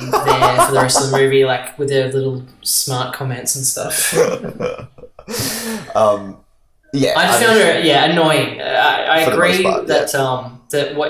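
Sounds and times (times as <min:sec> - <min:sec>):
men laughing and murmuring: 0:00.0 - 0:01.4, 0:04.1 - 0:06.3, 0:07.2 - 0:07.8, 0:09.2 - 0:09.8.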